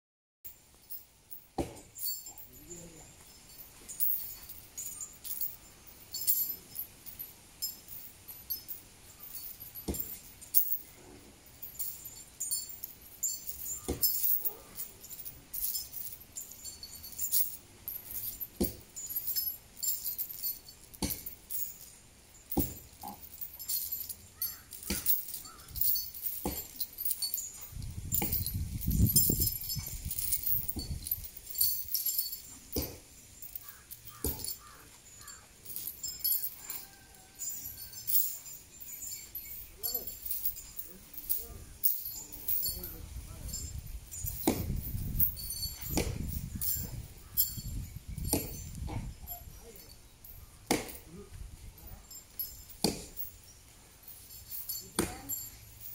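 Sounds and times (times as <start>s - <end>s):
metal chain clinking: 0.5s - 55.9s.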